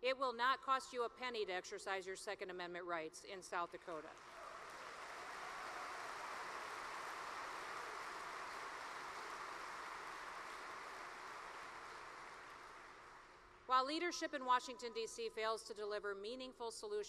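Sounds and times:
audience applauding: 0:04.2 - 0:13.6.

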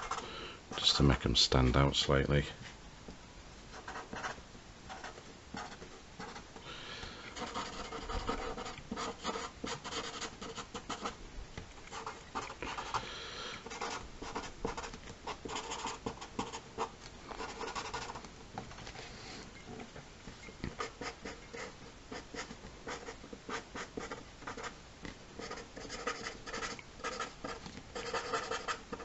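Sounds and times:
marker scratching on paper: 0:03.8 - 0:06.4, 0:07.3 - 0:11.2, 0:13.7 - 0:18.2, 0:20.7 - 0:24.7, 0:25.4 - 0:29.0.

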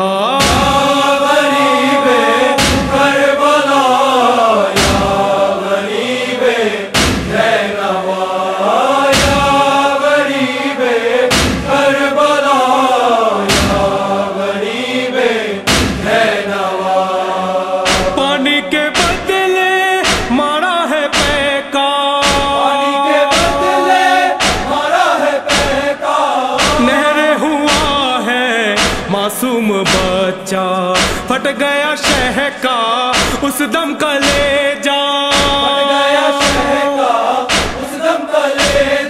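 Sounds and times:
men chanting a slow lament: 0:00.0 - 0:39.0
deep thump: 0:00.4 - 0:01.0, 0:02.6 - 0:03.2, 0:04.8 - 0:05.3, 0:07.0 - 0:07.5, 0:09.1 - 0:09.6, 0:11.3 - 0:11.8, 0:13.5 - 0:14.0, 0:15.7 - 0:16.2, 0:17.9 - 0:18.2, 0:20.0 - 0:20.4, 0:24.4 - 0:24.9, 0:25.5 - 0:25.8, 0:26.6 - 0:26.9, 0:37.5 - 0:37.8.

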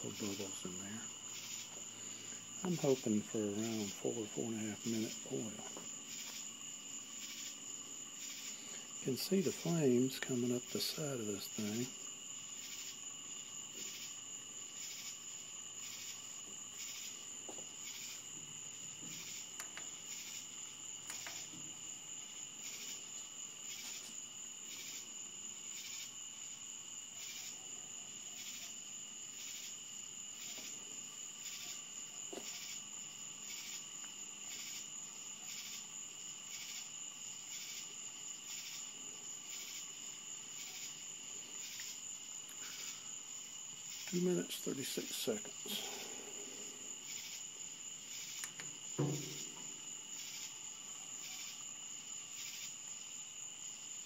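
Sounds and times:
crickets chirping: 0:00.0 - 0:54.0.

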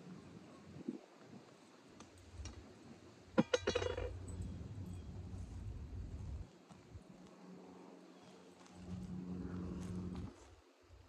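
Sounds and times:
low rumble: 0:04.1 - 0:06.5.

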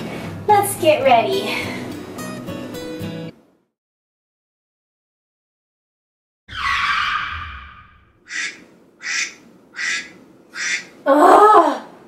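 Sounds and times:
alarm tone: 0:06.5 - 0:08.2.

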